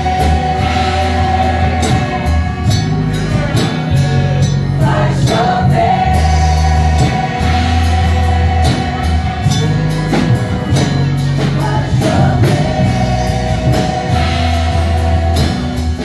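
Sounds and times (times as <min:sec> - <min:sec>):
bass line: 0:00.0 - 0:16.0
women's choir singing gospel: 0:00.0 - 0:16.0.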